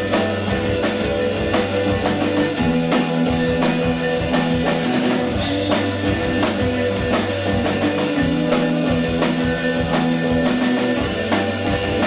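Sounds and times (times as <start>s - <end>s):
bass guitar: 0.0s - 12.0s
drum kit beat: 0.0s - 12.0s
electric guitar chords: 0.0s - 12.0s.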